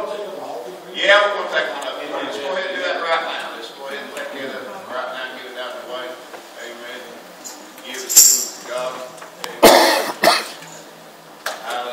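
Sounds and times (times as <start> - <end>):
person coughing: 9.6 - 10.6.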